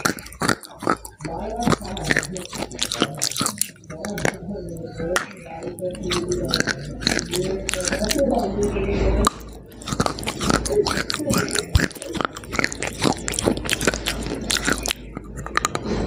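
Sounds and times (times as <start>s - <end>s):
crunchy chewing: 0.0s - 16.0s.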